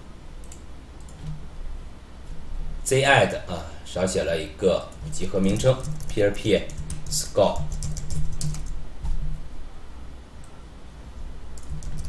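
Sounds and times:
steady low hum: 0:00.0 - 0:12.0
keyboard typing: 0:00.4 - 0:01.4, 0:04.9 - 0:09.4, 0:11.5 - 0:12.0.

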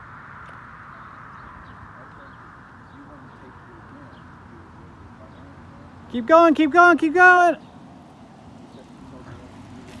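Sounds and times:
distant road traffic hum: 0:00.0 - 0:10.0.

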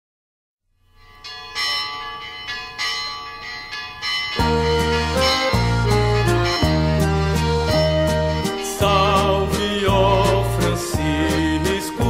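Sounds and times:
bells ringing: 0:00.8 - 0:10.4.

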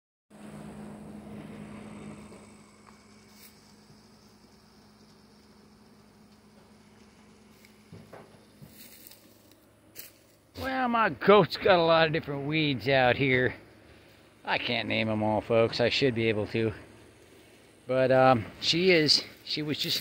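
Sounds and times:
low steady hum: 0:00.4 - 0:20.0
faint rustles and clicks: 0:06.2 - 0:10.6.

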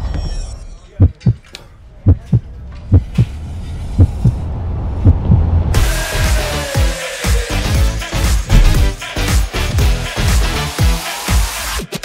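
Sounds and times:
deep heartbeat-like thumps: 0:01.0 - 0:01.4, 0:02.0 - 0:03.3, 0:03.9 - 0:04.4, 0:05.0 - 0:05.5, 0:08.5 - 0:09.1
low hum: 0:01.1 - 0:05.8.

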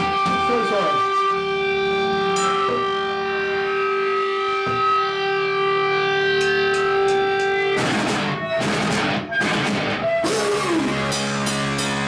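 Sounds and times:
guitar amp feedback tone: 0:00.0 - 0:12.0.

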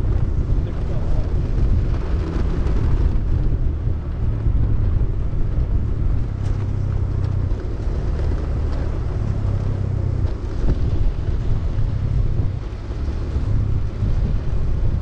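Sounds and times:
wheels rolling on rough concrete: 0:00.0 - 0:15.0
wind buffeting microphone: 0:00.0 - 0:15.0.

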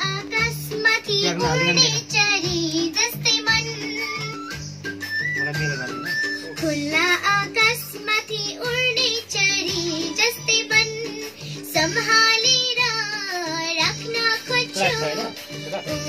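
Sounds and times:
girl singing: 0:00.0 - 0:04.5, 0:06.6 - 0:16.0
backing track with steady beat: 0:00.0 - 0:16.0.

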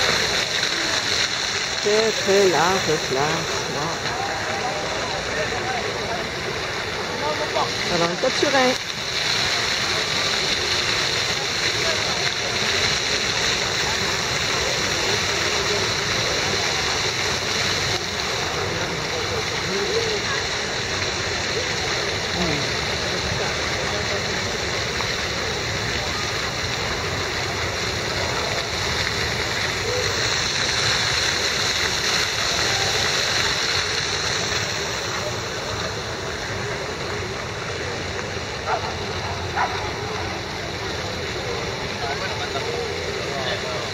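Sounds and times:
faint voices of passers-by: 0:00.0 - 0:43.9
fountain water splashing: 0:00.0 - 0:43.9.

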